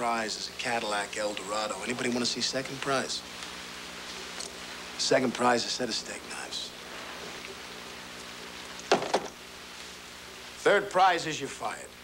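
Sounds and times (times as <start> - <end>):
faint low hum: 0.0 - 12.0
film soundtrack hiss: 0.0 - 12.0.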